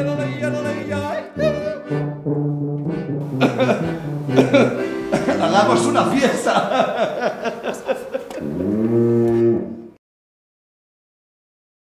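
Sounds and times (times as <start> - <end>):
cow mooing: 8.4 - 9.9.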